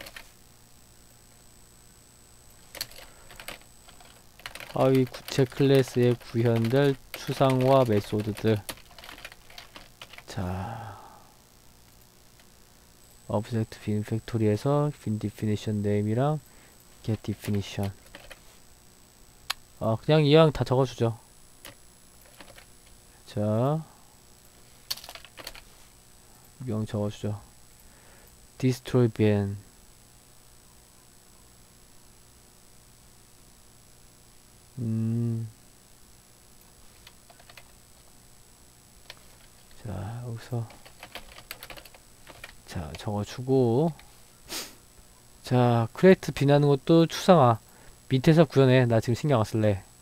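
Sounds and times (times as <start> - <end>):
computer keyboard keystrokes: 0.0 - 0.2, 2.7 - 10.2, 17.3 - 18.4, 21.6 - 22.7, 24.9 - 25.6, 37.0 - 37.7, 40.7 - 42.6.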